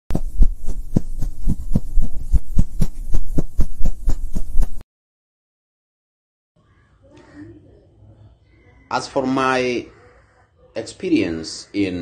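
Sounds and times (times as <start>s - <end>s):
deep repeating pulse: 0.1s - 4.8s.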